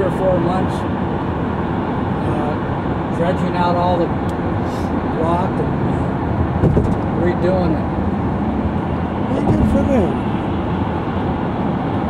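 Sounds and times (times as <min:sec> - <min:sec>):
car road and engine noise: 0:00.0 - 0:12.0
person speaking: 0:09.2 - 0:10.3.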